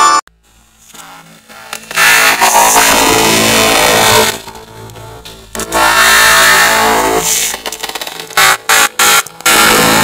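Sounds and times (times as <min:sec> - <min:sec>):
loud distorted voice: 0:02.0 - 0:04.5.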